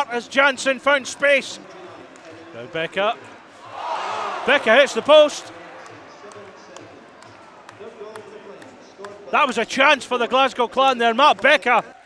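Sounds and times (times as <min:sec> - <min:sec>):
low crowd murmur: 0:01.6 - 0:09.4.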